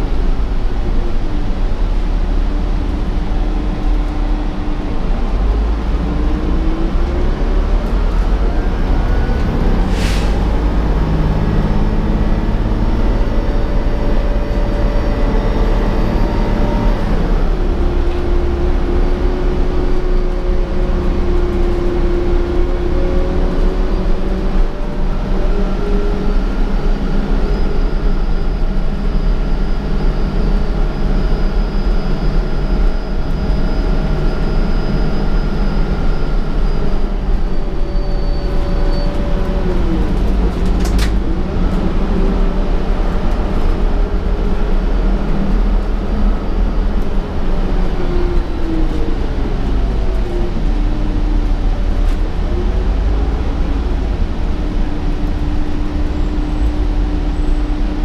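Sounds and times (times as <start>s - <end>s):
bus engine rumble: 0.0s - 58.0s
drivetrain whine: 0.0s - 58.0s
road noise: 0.0s - 58.0s.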